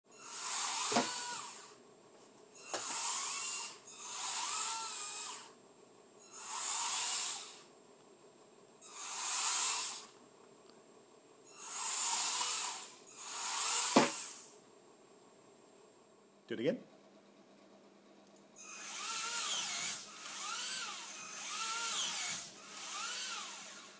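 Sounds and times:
gear motors whirring: 0.2 - 1.8, 2.6 - 5.6, 18.6 - 23.9.

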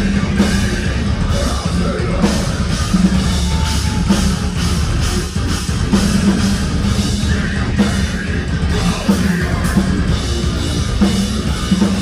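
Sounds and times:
busy drum kit: 0.0 - 12.0
electric guitars: 0.0 - 12.0.

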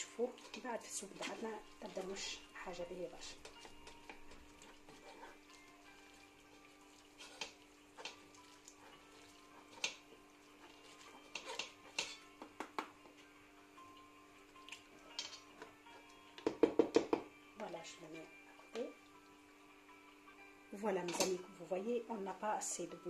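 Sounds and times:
faint background music: 0.0 - 23.0
wooden spoon scraping a metal sieve: 7.2 - 8.2, 10.6 - 12.2.

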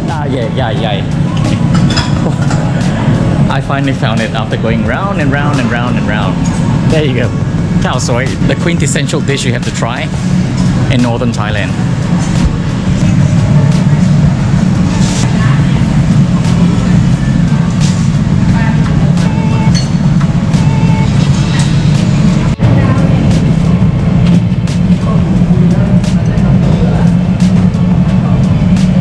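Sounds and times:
background music: 0.0 - 29.0
loud low hum: 0.0 - 29.0
clinks of bowls and utensils: 1.7 - 2.7.

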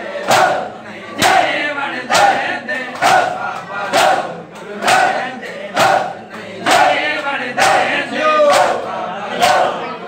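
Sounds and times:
men shouting chants: 0.0 - 10.0
men beating their chests: 0.2 - 9.8.

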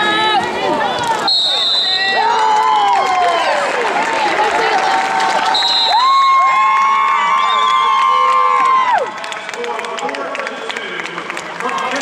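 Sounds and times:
crowd cheering and yelling: 0.0 - 12.0
short high whistle: 1.3 - 2.2.

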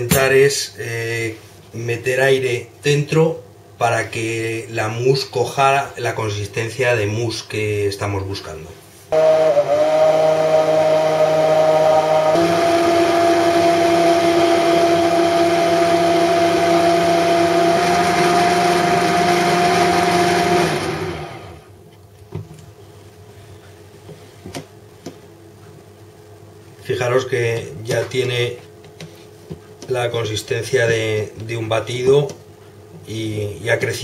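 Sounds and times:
immersion blender motor whine: 9.1 - 21.7.

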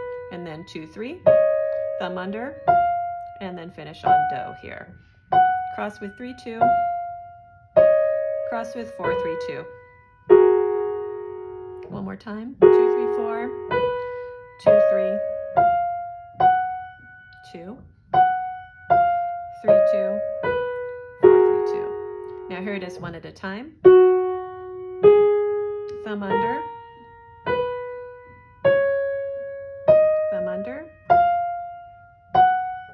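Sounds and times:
piano chord ringing: 0.0 - 32.9.

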